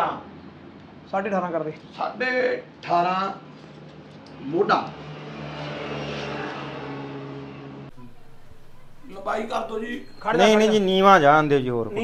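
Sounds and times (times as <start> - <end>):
mechanical hum with hiss: 7.9 - 12.0.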